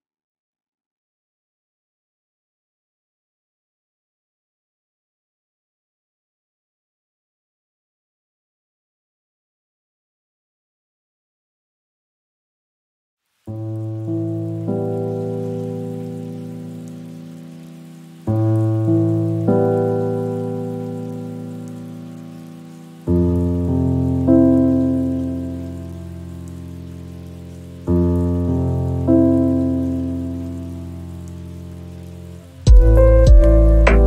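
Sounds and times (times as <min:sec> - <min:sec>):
rain hiss: 0:13.2 - 0:34.0
soft sustained music chords: 0:29.6 - 0:34.0.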